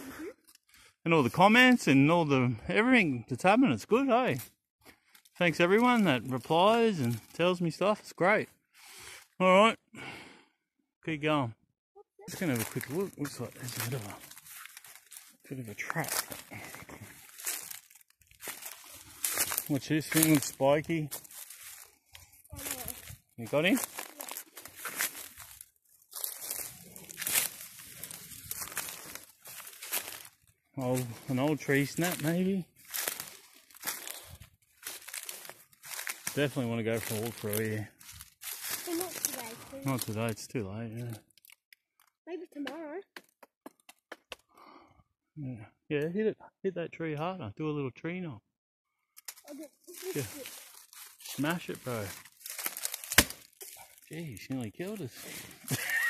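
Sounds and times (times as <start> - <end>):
footsteps crunching through dry leaves: 12.3 - 40.2, 49.3 - 56.0
leaves and scrub rustling: 12.3 - 40.4, 49.2 - 56.0
wood cracking against tree trunk: 34.8 - 36.4, 41.3 - 42.2, 50.5 - 54.5.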